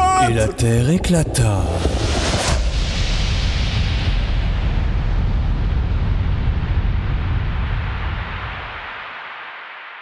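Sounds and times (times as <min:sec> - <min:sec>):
huge explosion rumble: 0:00.4 - 0:08.9.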